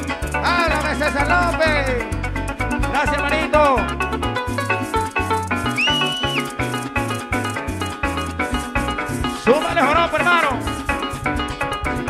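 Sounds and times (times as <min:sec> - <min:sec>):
cuatro strumming: 0:00.0 - 0:12.0
harp plucking fast melody: 0:00.0 - 0:12.0
maracas shaking: 0:00.0 - 0:12.0
pulsing bass notes: 0:00.0 - 0:12.0
high gliding tone: 0:05.6 - 0:06.7.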